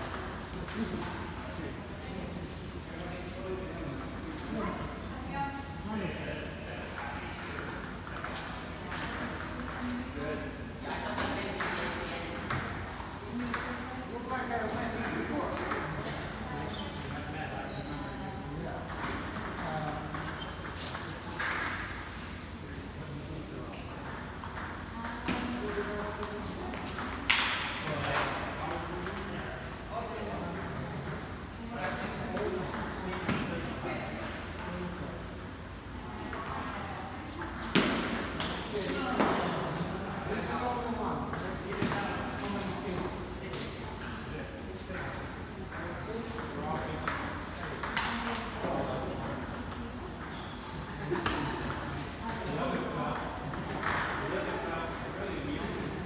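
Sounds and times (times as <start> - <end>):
people talking: 0.0 - 21.8, 22.7 - 56.0.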